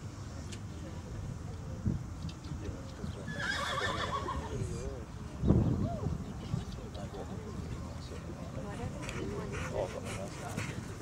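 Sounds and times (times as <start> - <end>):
horse whinnying: 3.3 - 4.5.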